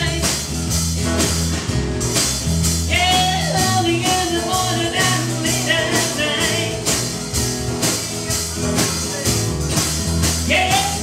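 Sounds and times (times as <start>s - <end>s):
woman singing: 0.0s - 0.4s, 2.9s - 7.0s, 10.5s - 11.0s
live rock band playing: 0.0s - 11.0s.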